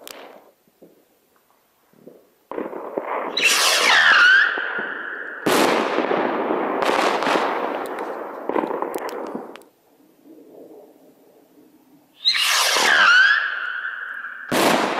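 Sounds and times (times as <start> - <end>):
firework crackling pops: 0.0 - 9.8, 12.2 - 14.9
firework rocket launching hiss: 2.5 - 9.6, 12.1 - 14.9.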